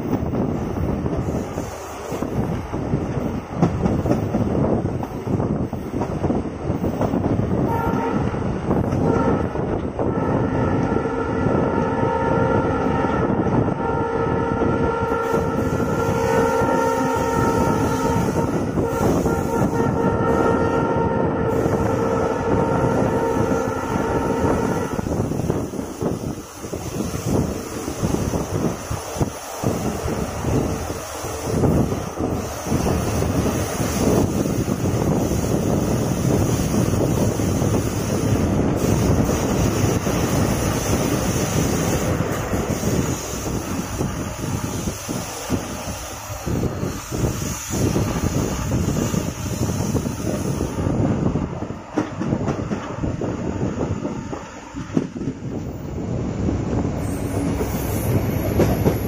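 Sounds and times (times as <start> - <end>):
gusty rushing wind: 0.0 - 59.0
train rumble and wheel clatter: 0.0 - 59.0
multi-tone train whistle: 7.6 - 50.7.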